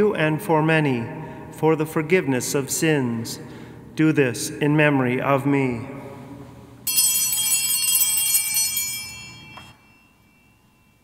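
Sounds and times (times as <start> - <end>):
altar bells ringing: 6.8 - 11.0.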